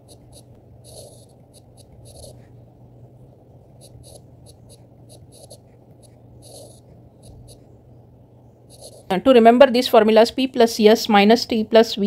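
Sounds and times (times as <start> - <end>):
pen scratching on paper: 0.0 - 2.6, 3.7 - 7.8, 8.7 - 9.1
steady low hum: 0.0 - 12.0.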